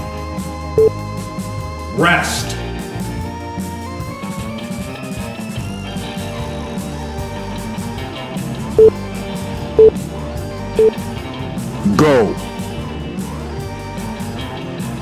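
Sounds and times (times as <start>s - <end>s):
rock music with electric guitar: 0.0s - 15.0s.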